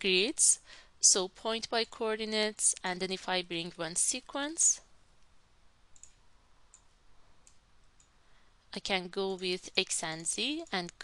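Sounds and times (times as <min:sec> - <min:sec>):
faint computer mouse clicks: 0:05.9 - 0:08.2.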